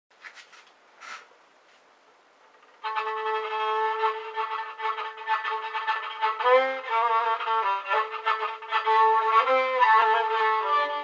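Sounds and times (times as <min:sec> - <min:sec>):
violin music: 0:02.6 - 0:11.0.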